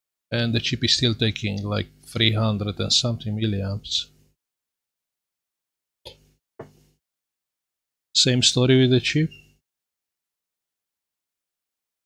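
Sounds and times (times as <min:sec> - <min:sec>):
man speaking: 0:00.3 - 0:04.1, 0:08.2 - 0:09.4.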